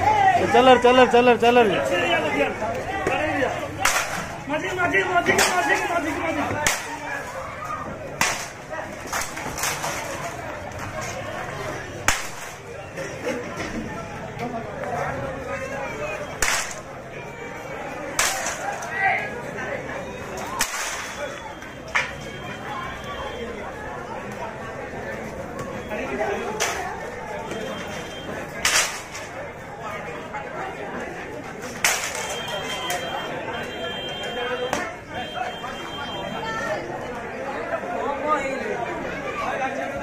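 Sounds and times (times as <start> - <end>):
murmuring voices: 0.0 - 40.0
people chattering: 0.0 - 40.0
wooden stick smacks: 3.8 - 4.3, 6.6 - 7.0, 8.2 - 10.0, 12.1 - 12.6, 16.4 - 16.9, 18.2 - 18.8, 20.6 - 21.2, 28.6 - 29.3.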